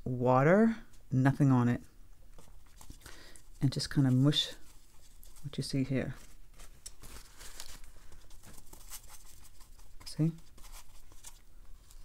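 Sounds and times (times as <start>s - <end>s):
paper towel crinkling: 2.4s - 12.0s.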